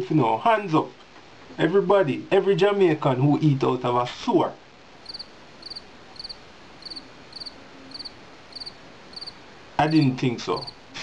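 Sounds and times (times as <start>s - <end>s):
faint background hiss: 0.0s - 11.0s
cricket chirping: 5.0s - 10.8s.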